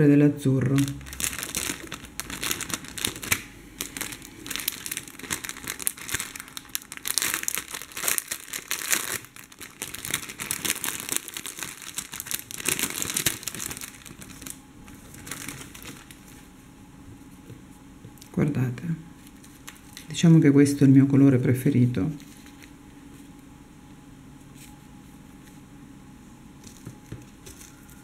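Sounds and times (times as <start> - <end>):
plastic bag crinkling: 0.6 - 16.5, 26.6 - 28.0.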